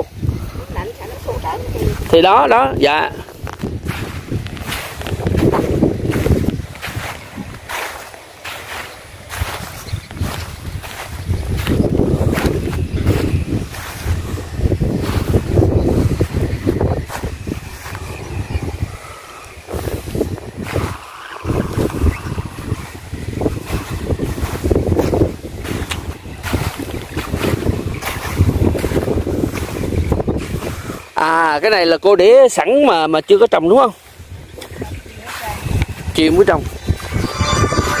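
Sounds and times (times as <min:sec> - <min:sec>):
wind on microphone: 0:00.0 - 0:31.2, 0:34.0 - 0:38.0.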